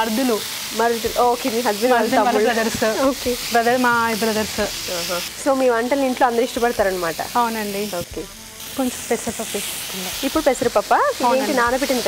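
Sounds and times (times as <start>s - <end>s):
food sizzling in a pan: 0.0s - 12.0s
women talking: 0.0s - 12.0s.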